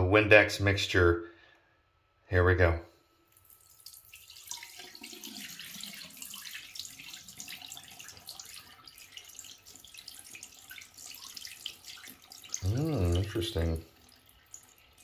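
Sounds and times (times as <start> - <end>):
liquid pouring into a sink: 3.3 - 15.0.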